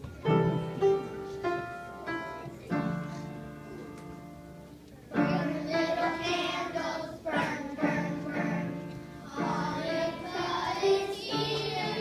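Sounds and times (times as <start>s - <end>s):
children singing together: 5.1s - 12.0s.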